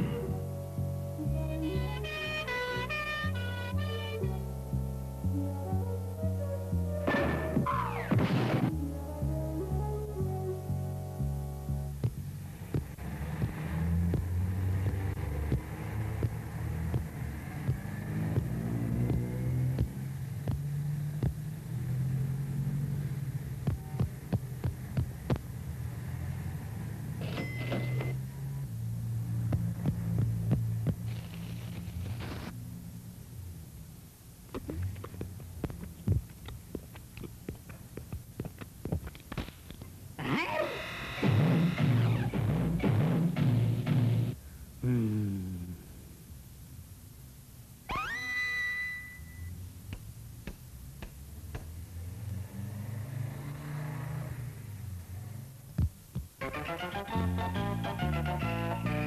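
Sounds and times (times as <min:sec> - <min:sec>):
steady low hum: 0:08.7 - 0:27.4, 0:28.2 - 0:40.2
cartoon footstep taps: 0:12.0 - 0:21.5, 0:23.6 - 0:25.5, 0:29.5 - 0:31.2, 0:34.5 - 0:40.0, 0:55.8 - 0:57.0
shop-door bell jingle: 0:27.3 - 0:28.2
synthesized tone sweeping to whistle: 0:47.9 - 0:49.5.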